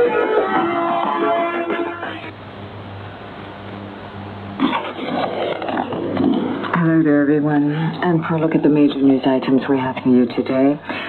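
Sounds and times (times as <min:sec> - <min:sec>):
radio static hiss: 0:00.0 - 0:02.7, 0:03.4 - 0:11.0
rough rush of static: 0:00.0 - 0:10.6
low hum: 0:00.0 - 0:10.9.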